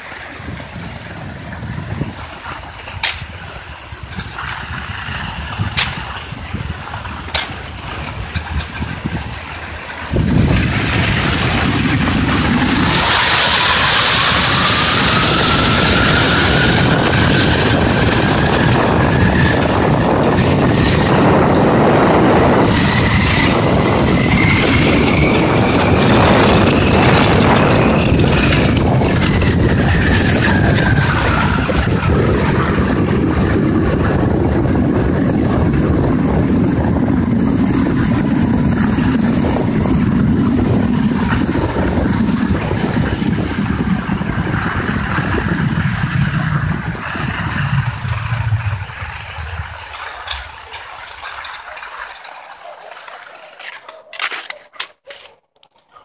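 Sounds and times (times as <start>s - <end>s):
wind buffeting microphone: 0.0s - 51.8s
skis running in track: 0.0s - 56.0s.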